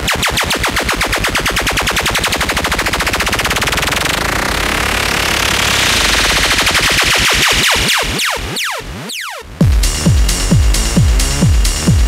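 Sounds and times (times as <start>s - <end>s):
noise sweep: 2.1s - 12.0s
electronic dance beat: 5.8s - 12.0s
rapid drum roll: 9.6s - 12.0s.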